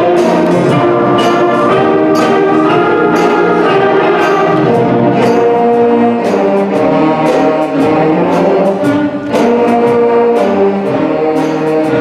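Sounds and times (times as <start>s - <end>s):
concert band playing: 0.0s - 12.0s
percussion strikes: 0.0s - 12.0s.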